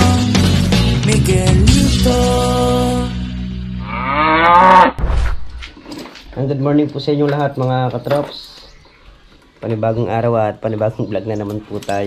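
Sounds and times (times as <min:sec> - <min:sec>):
cow mooing: 0:03.8 - 0:05.0
low thump: 0:05.0 - 0:05.6.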